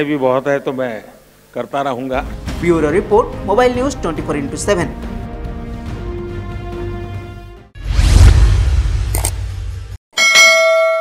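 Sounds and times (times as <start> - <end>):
low whoosh: 7.8 - 10.0
bright bell ding: 10.2 - 11.0.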